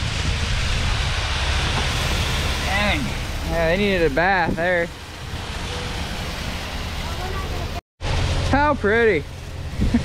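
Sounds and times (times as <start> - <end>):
water spraying from hose: 0.0 - 10.0.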